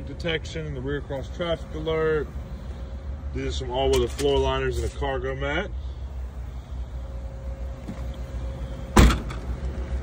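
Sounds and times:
car liftgate shutting thud: 8.9 - 9.4.

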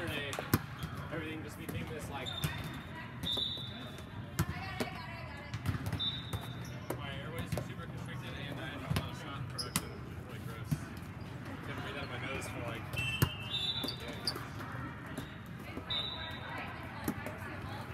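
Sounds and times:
players' voices: 0.0 - 17.9
sneaker squeaks on court: 9.5 - 10.0, 12.9 - 16.4.

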